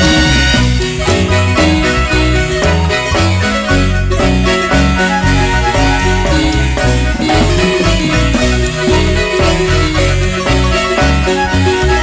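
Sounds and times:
steady bass line: 0.0s - 11.4s
marimba music: 0.0s - 12.0s.

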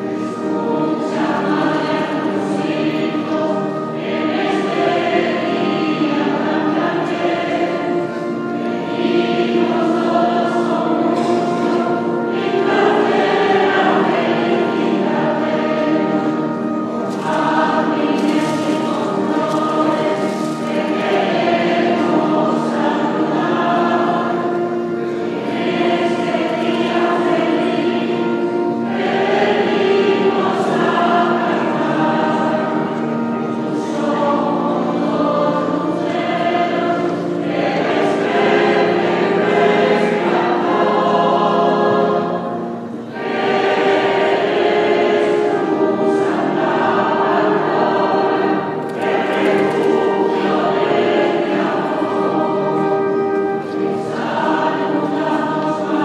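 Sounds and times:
mixed choir singing a hymn: 0.0s - 56.0s.

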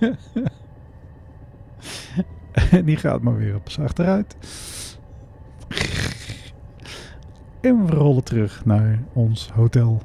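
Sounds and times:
man laughing: 0.0s - 0.7s, 1.8s - 3.3s, 5.6s - 7.1s
faint low hum: 0.0s - 10.0s
sharp breath: 4.4s - 5.0s.

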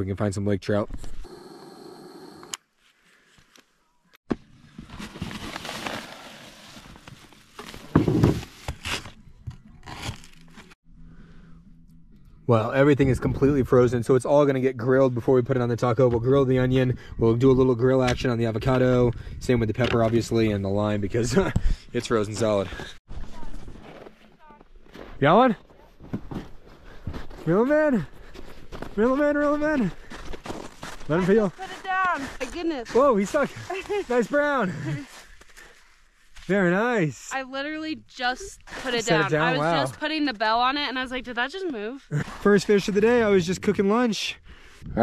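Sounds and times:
plastic packaging crinkling: 5.0s - 7.9s
footsteps crunching through snow: 28.2s - 36.6s.

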